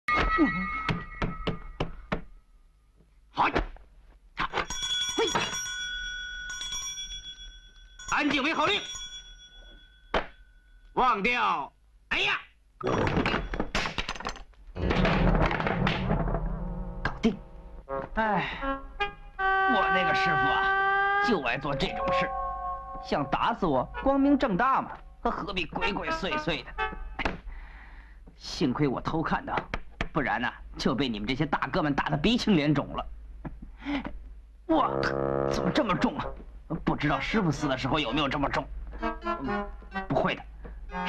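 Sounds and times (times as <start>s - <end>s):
long held note: 19.4s - 24.1s, 34.8s - 36.4s
man talking: 19.7s - 20.7s, 21.3s - 22.3s, 23.0s - 26.7s, 34.7s - 38.7s
high ringing tone: 19.7s - 24.0s.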